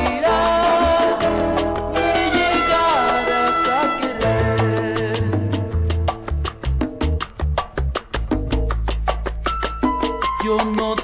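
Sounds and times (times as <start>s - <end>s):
instrumental salsa music: 0.0s - 11.0s.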